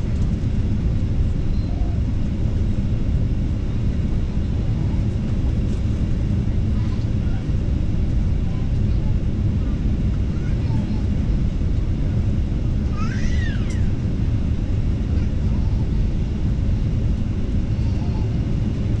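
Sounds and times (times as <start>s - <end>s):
airliner cabin engine rumble: 0.0s - 19.0s
faint voices: 4.3s - 12.0s.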